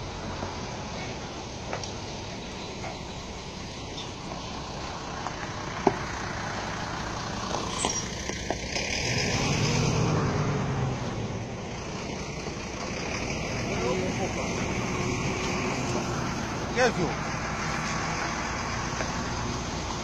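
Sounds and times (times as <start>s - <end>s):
truck diesel engine running: 0.0s - 20.0s.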